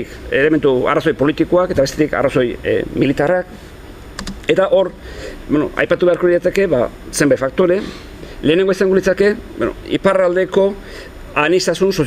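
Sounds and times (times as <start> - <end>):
man speaking: 0.0 - 3.7, 4.4 - 12.0.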